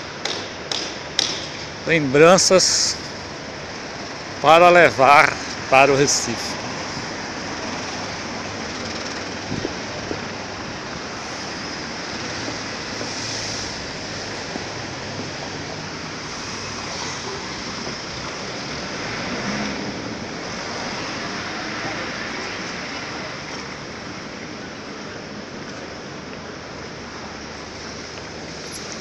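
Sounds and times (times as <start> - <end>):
passing traffic hiss: 0.0 - 29.0
wind: 0.0 - 29.0.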